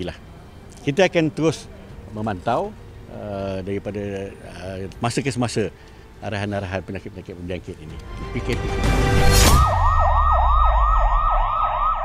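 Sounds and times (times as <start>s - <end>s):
yelping siren: 9.5s - 12.0s.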